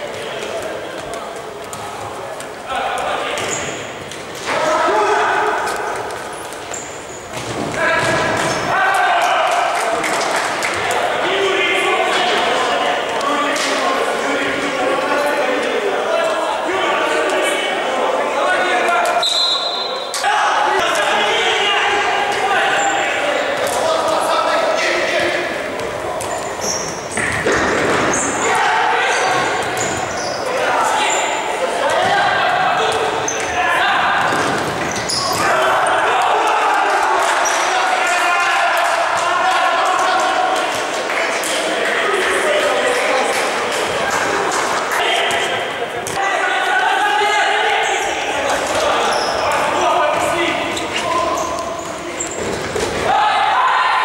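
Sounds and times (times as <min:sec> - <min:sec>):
players shouting: 0:01.9 - 0:54.0
shoe squeaks on hard floor: 0:03.4 - 0:03.8, 0:06.3 - 0:07.4, 0:19.2 - 0:20.2, 0:26.2 - 0:27.4, 0:29.2 - 0:31.4, 0:34.8 - 0:35.4, 0:49.0 - 0:49.6, 0:50.7 - 0:52.6.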